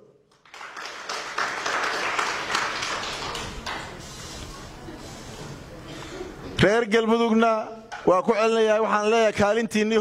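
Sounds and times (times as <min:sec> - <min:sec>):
audience clapping: 0:00.3 - 0:04.1.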